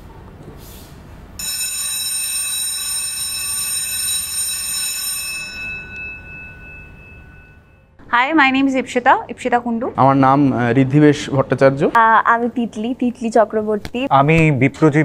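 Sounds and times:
bright bell-like chime: 0:04.8 - 0:07.9.

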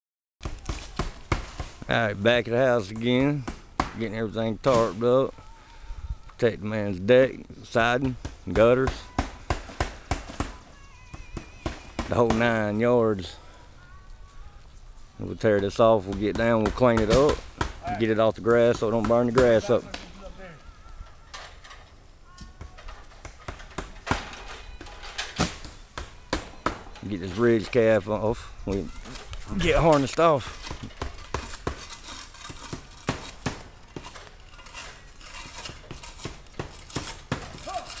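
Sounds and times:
shingles being pried up: 0:28.9 - 0:38.0.

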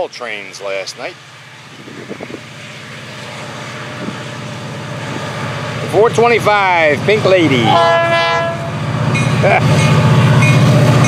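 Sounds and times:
diesel locomotive engine hum: 0:00.0 - 0:11.0.

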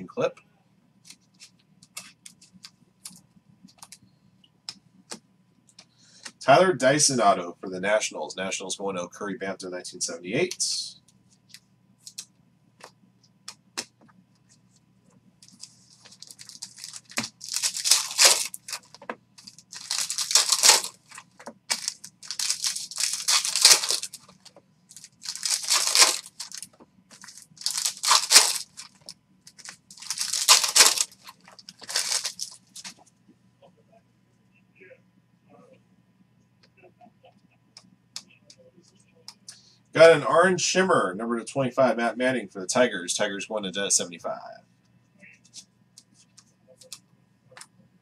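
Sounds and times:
foil wrappers tearing and crinkling: 0:15.4 - 0:32.8.

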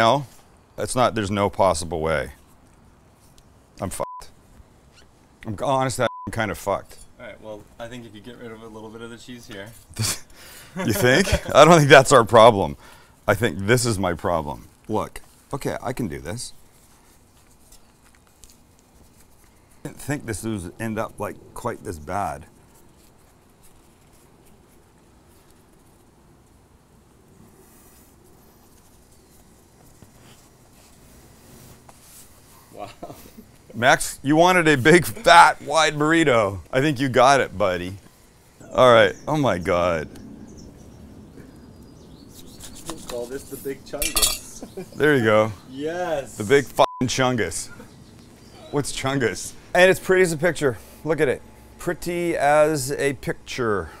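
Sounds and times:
soft ticks and rustles: 0:14.5 - 0:20.1, 0:22.4 - 0:26.7.

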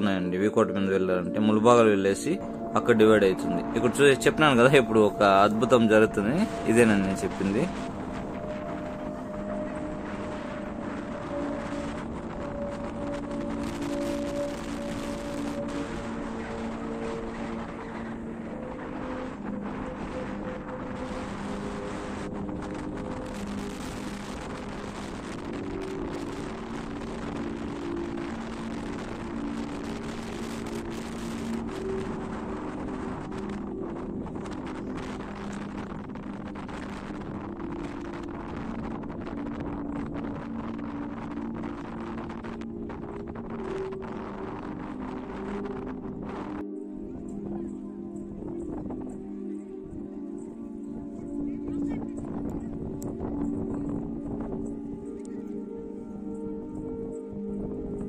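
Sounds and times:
slow melody of held notes: 0:00.0 - 0:58.0
strong gusting wind on microphone: 0:00.0 - 0:58.0.

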